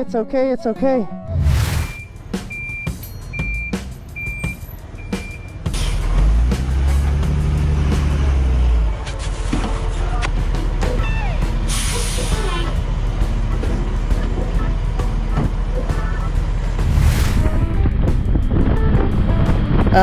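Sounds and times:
background music: 0:00.0 - 0:20.0
diesel truck idling: 0:02.0 - 0:19.8
air brakes hissing: 0:05.6 - 0:06.2, 0:11.7 - 0:12.7.

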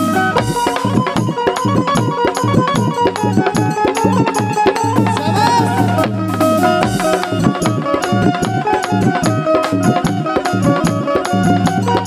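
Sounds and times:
hand drums beat: 0:00.0 - 0:12.0
sustained melody line: 0:00.0 - 0:12.0.

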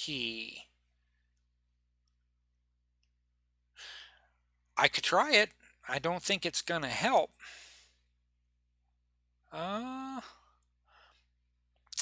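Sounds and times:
breathy sigh: 0:09.6 - 0:10.6.

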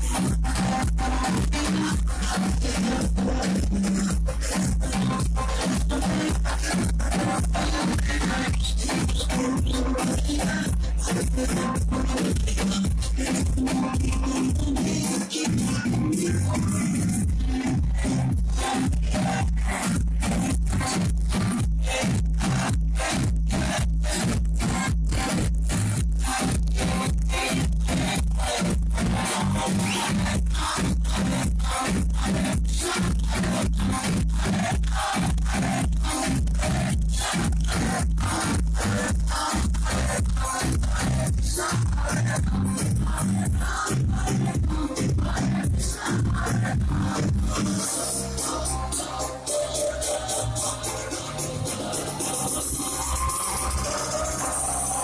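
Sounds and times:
dance music with heavy bass beat: 0:00.0 - 0:55.0.

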